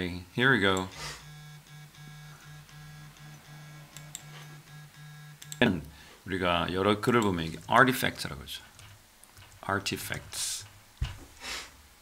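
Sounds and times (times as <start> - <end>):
faint broken low hum: 0.0 - 12.0.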